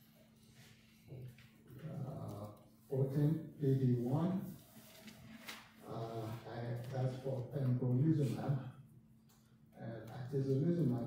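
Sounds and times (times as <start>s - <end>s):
man humming or groaning: 1.8s - 2.5s.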